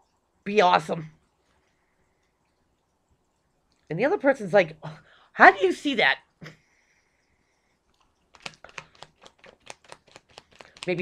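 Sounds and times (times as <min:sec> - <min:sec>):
cards being shuffled: 0:08.0 - 0:11.0.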